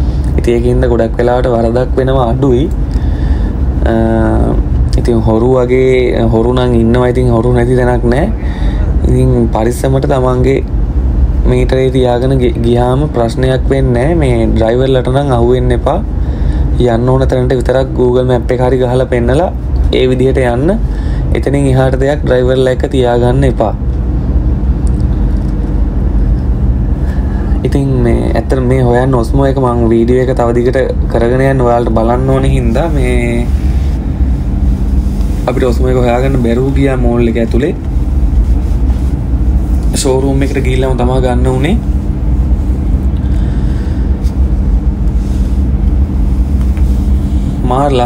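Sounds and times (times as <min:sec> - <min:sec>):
faint hum: 0:00.0 - 0:48.0
loud low rumble: 0:00.0 - 0:48.0.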